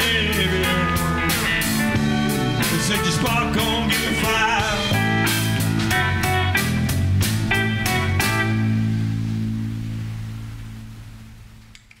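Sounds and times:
blues band final chord: 0:00.0 - 0:11.7.

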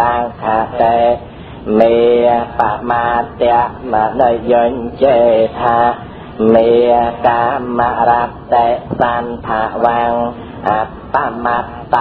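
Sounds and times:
person chanting recitation: 0:00.0 - 0:12.0.

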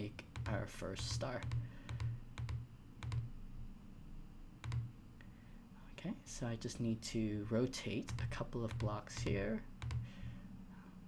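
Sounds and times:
computer mouse clicking: 0:00.2 - 0:03.3, 0:04.6 - 0:04.9, 0:08.1 - 0:10.1.

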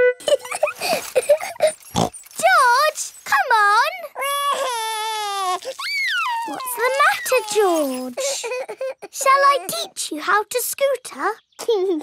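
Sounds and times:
cartoon character crying whine: 0:04.5 - 0:07.6.

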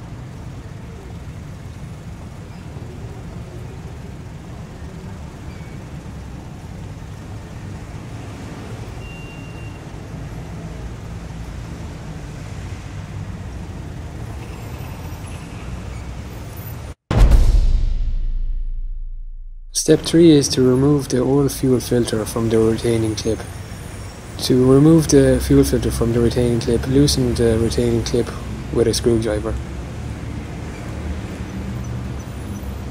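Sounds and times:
loud low hit: 0:17.1 - 0:20.1.

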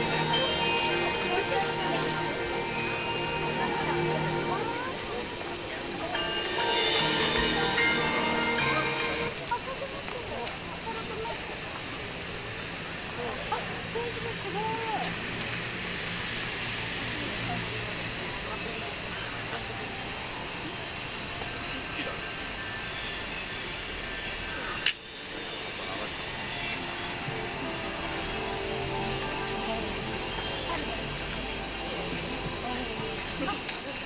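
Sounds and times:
faint voices: 0:00.0 - 0:12.2, 0:24.6 - 0:34.0
faint music: 0:00.0 - 0:22.2, 0:23.6 - 0:34.0
high-pitched hiss: 0:00.0 - 0:34.0.

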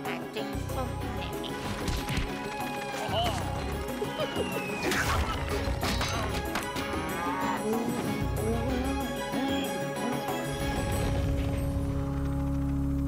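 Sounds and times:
background music: 0:00.0 - 0:13.0
cartoon cow mooing: 0:07.0 - 0:07.9.

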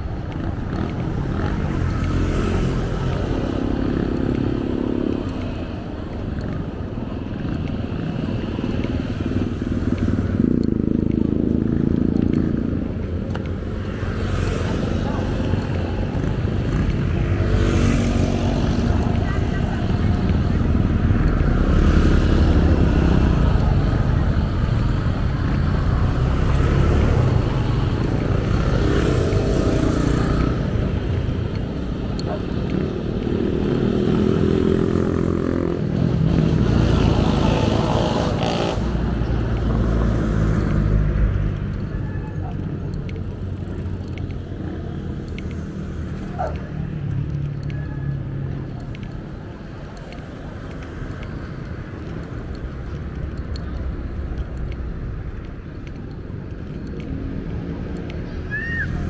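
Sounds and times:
low road rumble: 0:00.0 - 0:59.0
motorcycles passing: 0:00.0 - 0:59.0.

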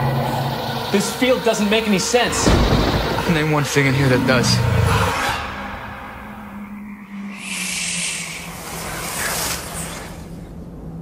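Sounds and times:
low sustained drone: 0:00.0 - 0:11.0
rushing noise swell: 0:00.0 - 0:11.0.

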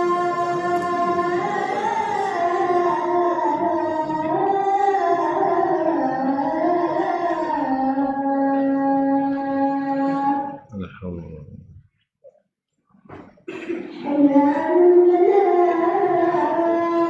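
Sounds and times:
man chanting: 0:00.0 - 0:11.8.

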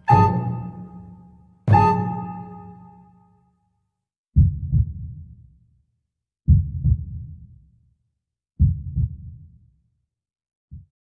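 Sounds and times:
heartbeat-like double thumps: 0:04.4 - 0:05.2, 0:06.5 - 0:07.3, 0:08.6 - 0:09.4.

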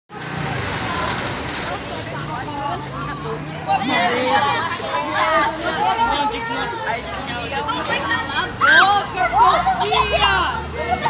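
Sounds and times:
motorcycle engine passing by: 0:00.1 - 0:04.7
students chattering: 0:00.1 - 0:11.0.

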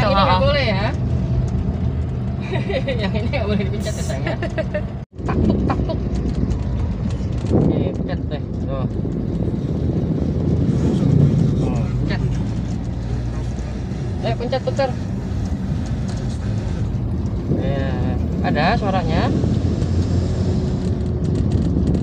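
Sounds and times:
car cabin engine and road rumble: 0:00.0 - 0:22.0
voices: 0:10.8 - 0:19.4.

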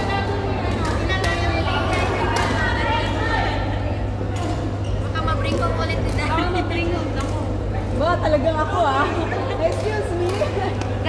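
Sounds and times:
players chattering: 0:00.0 - 0:11.0
steady low hum: 0:00.0 - 0:11.0.

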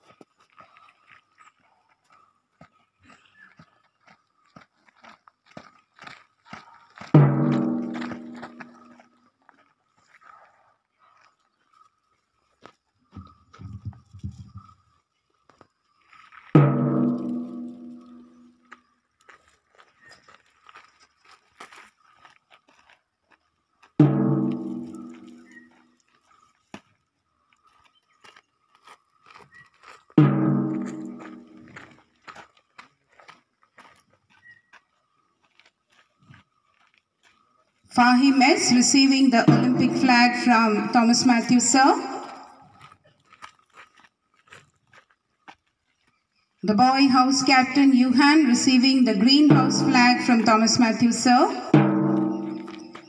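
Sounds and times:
struck ringing musical notes: 0:51.7 - 0:53.0.

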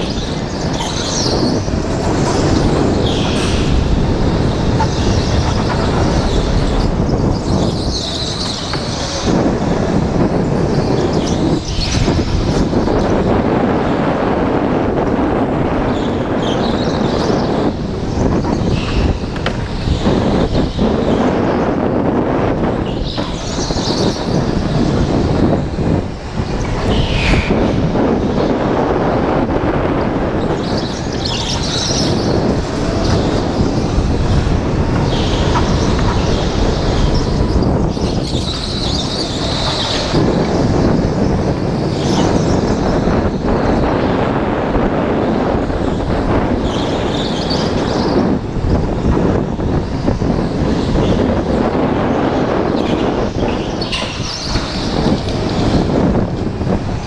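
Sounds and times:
wind on microphone: 0:00.0 - 0:57.0
tyre squeal: 0:30.4 - 0:43.8.

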